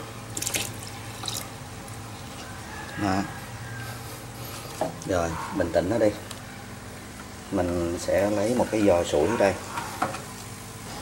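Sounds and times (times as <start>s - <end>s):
steady low hum: 0.0s - 11.0s
water trickling and dripping: 0.3s - 3.0s
water splashing: 0.4s - 1.5s.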